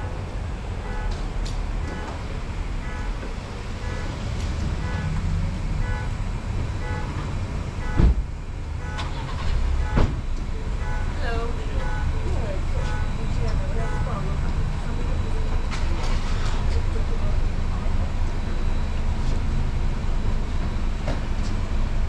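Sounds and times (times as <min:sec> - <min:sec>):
car idling: 0:00.0 - 0:22.0.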